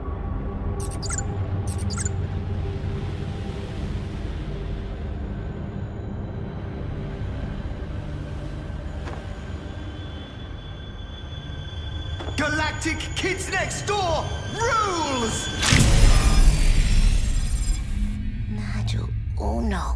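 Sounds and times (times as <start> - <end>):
tense dramatic cartoon score: 0.0 - 19.9.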